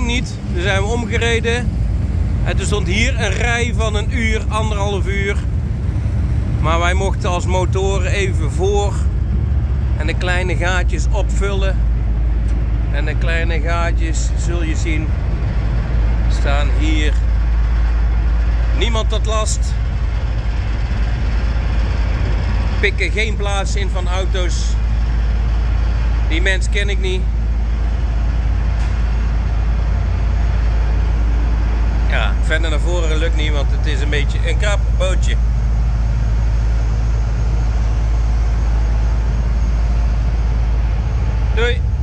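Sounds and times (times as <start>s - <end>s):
faint hum: 0.0s - 42.0s
ship engines droning: 0.0s - 42.0s.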